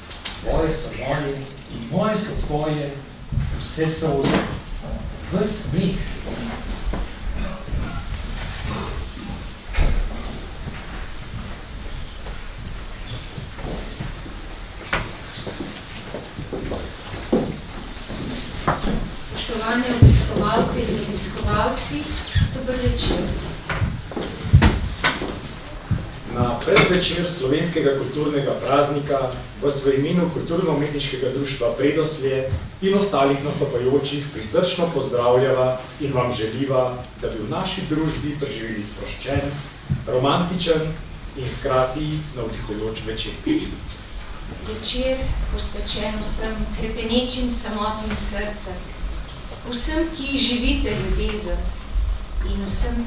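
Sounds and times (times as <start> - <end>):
person speaking: 0.0 - 14.6, 16.4 - 53.0
person talking: 0.4 - 6.8, 18.8 - 24.7, 25.6 - 48.9, 49.6 - 51.8, 52.4 - 53.0
soft knocks and thuds: 13.1 - 19.2, 22.4 - 26.9.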